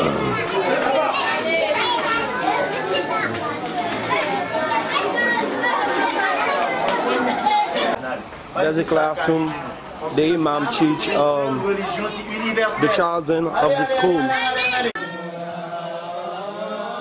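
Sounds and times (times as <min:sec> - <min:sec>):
babble of children's voices: 0:00.0 - 0:08.0.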